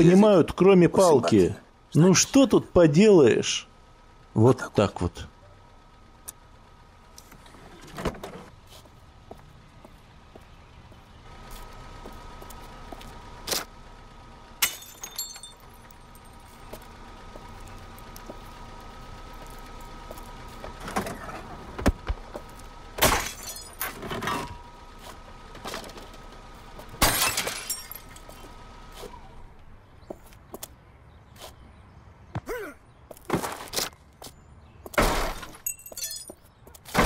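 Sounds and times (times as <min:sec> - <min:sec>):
car rumbling: 0:00.0 - 0:37.0
car glass smashing: 0:14.6 - 0:15.7, 0:23.0 - 0:24.5, 0:27.0 - 0:28.2, 0:35.0 - 0:37.0
glass shards crackling: 0:35.5 - 0:36.4.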